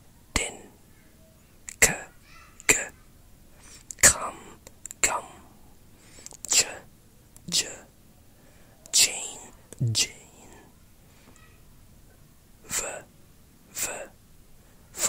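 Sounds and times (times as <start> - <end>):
person whispering speech sounds: 0.4 - 0.7, 8.9 - 10.7.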